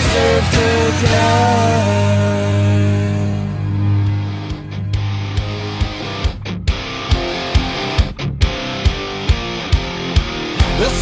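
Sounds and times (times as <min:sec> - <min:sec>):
electric guitar: 0:00.0 - 0:11.0
steady drum beat: 0:04.4 - 0:11.0.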